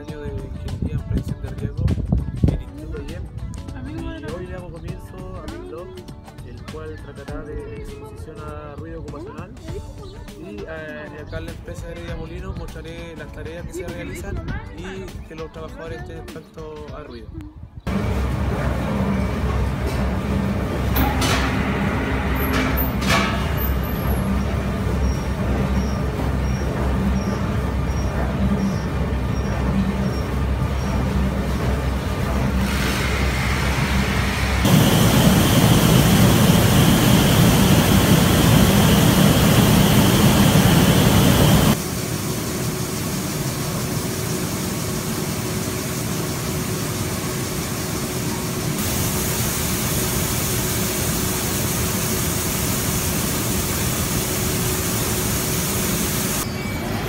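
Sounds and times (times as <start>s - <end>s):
industrial machinery noise: 17.9s - 57.0s
machine hum with held tone: 17.9s - 57.0s.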